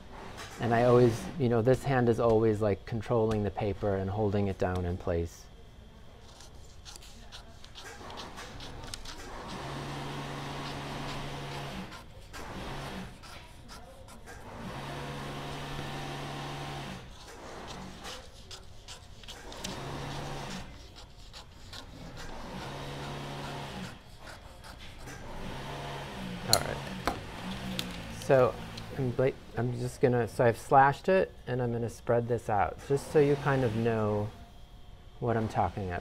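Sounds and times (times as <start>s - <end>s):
shears cutting paper: 6.2s - 28.9s.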